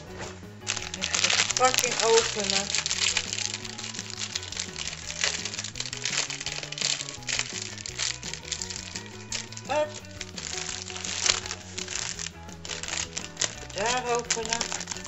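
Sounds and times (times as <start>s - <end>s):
background music: 0.0s - 15.0s
plastic wrapper crinkling: 0.6s - 15.0s
scissors cutting plastic: 0.7s - 15.0s.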